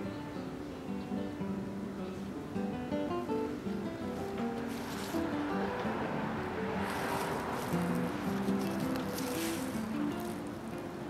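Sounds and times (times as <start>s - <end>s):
acoustic guitar melody: 0.0s - 11.0s.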